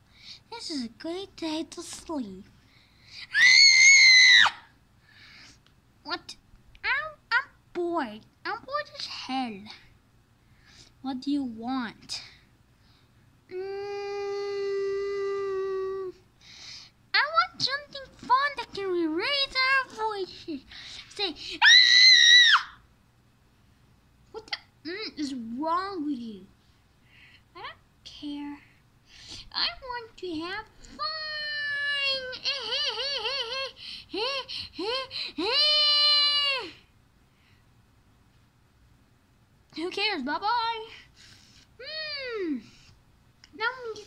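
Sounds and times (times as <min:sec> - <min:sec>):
child screaming: 0:03.3 - 0:04.7, 0:21.6 - 0:22.8, 0:34.9 - 0:36.8.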